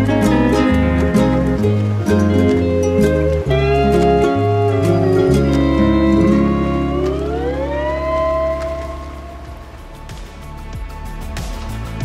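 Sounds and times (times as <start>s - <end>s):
steel guitar note sliding up: 0.0s - 10.0s.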